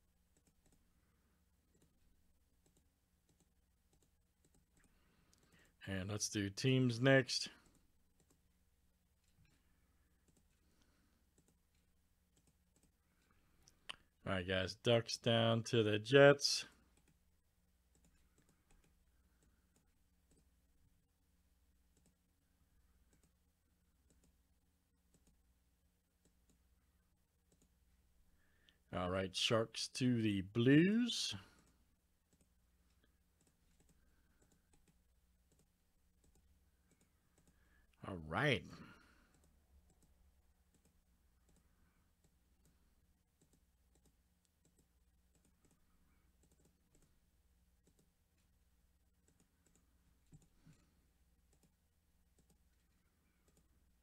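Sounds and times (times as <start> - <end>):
computer mouse clicks: 0.3 - 0.9, 1.7 - 2.0, 2.6 - 5.8, 7.6 - 8.4, 10.2 - 14.1, 17.9 - 20.5, 21.9 - 22.2, 23.0 - 23.4, 24.0 - 24.4, 25.1 - 25.4, 27.4 - 27.8, 31.6 - 37.7, 39.2 - 42.8, 43.4 - 47.2, 47.8 - 48.5, 49.2 - 53.8.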